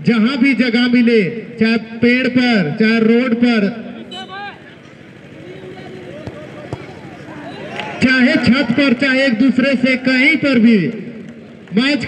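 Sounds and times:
male commentator speaking: 0.0 - 4.7, 7.9 - 11.0, 11.7 - 12.0
spectator chatter: 4.0 - 9.0.

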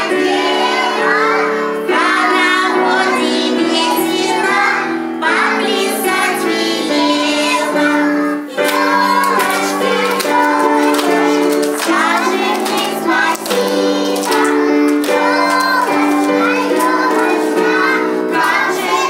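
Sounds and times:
child singing: 0.0 - 19.0
instrumental accompaniment: 0.0 - 19.0.

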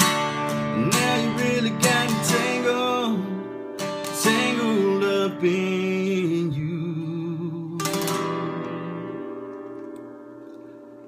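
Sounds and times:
acoustic guitar chord ringing: 0.0 - 11.0.

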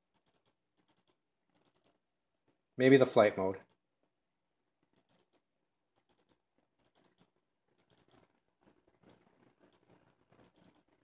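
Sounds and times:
computer mouse clicks: 0.1 - 2.0, 4.8 - 8.4, 9.0 - 11.0.

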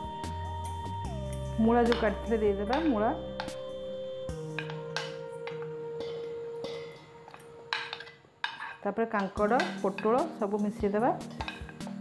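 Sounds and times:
soft background music: 0.0 - 12.0
spoon scraping a plate: 4.6 - 8.9, 11.2 - 12.0.

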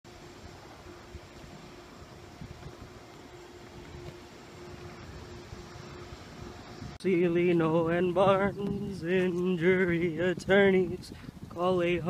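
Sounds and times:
faint hum: 0.1 - 12.0.

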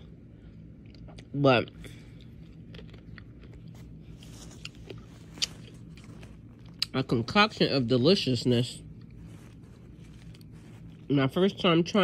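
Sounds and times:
steady low hum: 0.0 - 12.0
person chewing crunchy food: 0.6 - 7.6, 8.7 - 11.1.

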